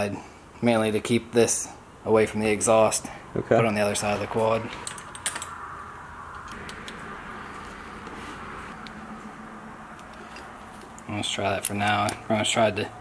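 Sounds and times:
steady background hiss: 0.0 - 13.0
metal parts clicking: 4.7 - 5.6
metal tools clinking: 4.7 - 5.6.

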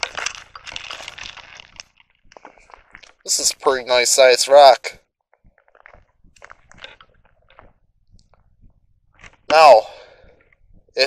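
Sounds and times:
footsteps on gravel: 0.0 - 3.4, 5.4 - 7.8.

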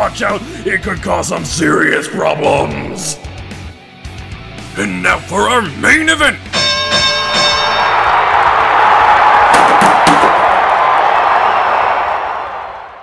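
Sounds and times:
boxing ring bell: 6.5 - 8.1
crowd cheering: 7.1 - 13.0.

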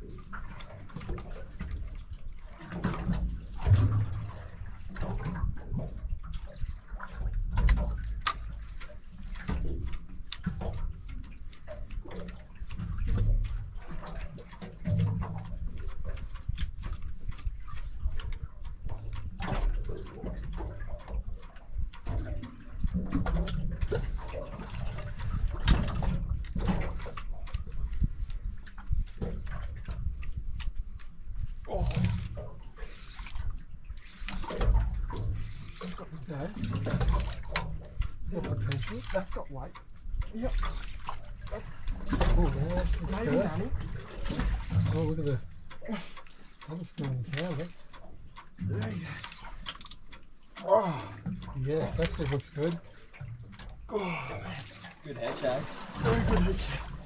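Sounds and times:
water sloshing against boat hull: 0.0 - 57.0.

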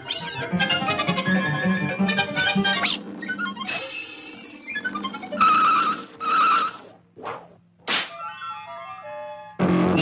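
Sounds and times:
whip-like swish: 7.2 - 8.2.

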